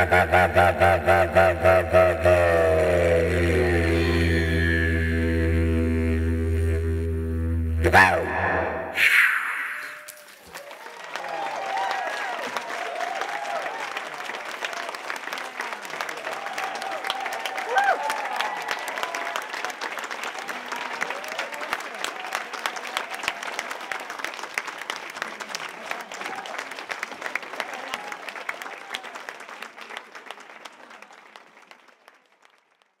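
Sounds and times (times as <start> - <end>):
audience cheering with whoops: 8.2 - 14.9, 16.1 - 19.7, 20.4 - 24.1, 27.6 - 29.3
audience applauding: 10.0 - 33.0.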